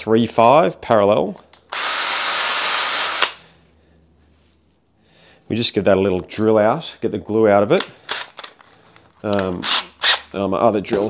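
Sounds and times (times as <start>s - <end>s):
cordless drill drilling: 1.7s - 3.4s.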